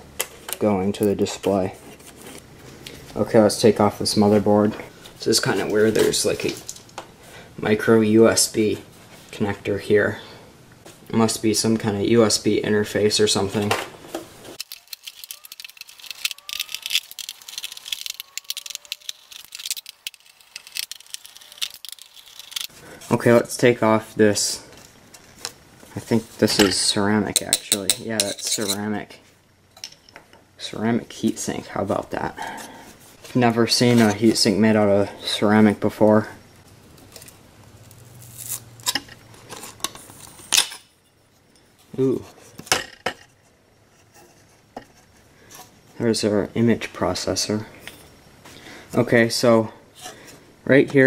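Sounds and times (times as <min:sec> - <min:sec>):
plastic connectors clicking and rattling: 0:14.6 - 0:22.7.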